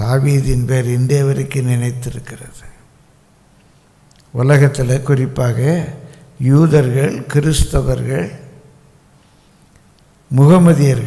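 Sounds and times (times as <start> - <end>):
man speaking into a microphone: 0.0 - 2.8, 4.3 - 8.6, 10.3 - 11.0.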